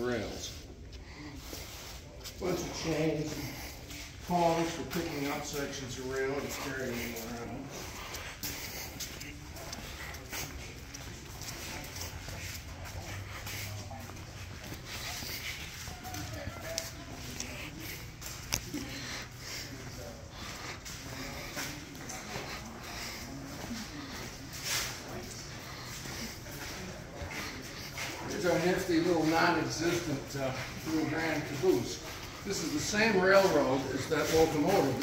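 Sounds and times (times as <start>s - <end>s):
faint indistinct voices: 0.0s - 35.0s
steady low hum: 0.0s - 35.0s
footsteps on concrete: 0.1s - 35.0s.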